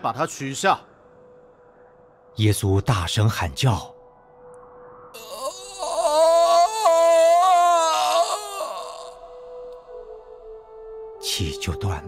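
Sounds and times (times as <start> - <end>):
man's drawn-out wordless cry: 5.2 - 9.7.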